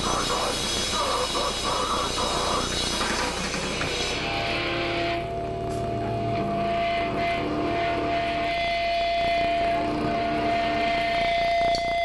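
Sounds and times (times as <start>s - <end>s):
droning amp noise: 0.0s - 12.0s
guitar amplifier feedback tone: 0.0s - 12.0s.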